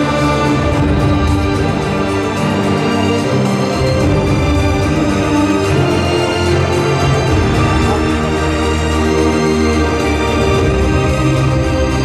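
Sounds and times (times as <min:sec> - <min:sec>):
instrumental music with layered tones: 0:00.0 - 0:12.0.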